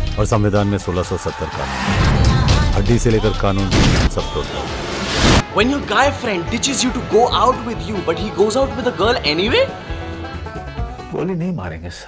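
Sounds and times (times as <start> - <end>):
music backing with strong bass: 0.0 - 11.2
film song singing: 0.1 - 11.2.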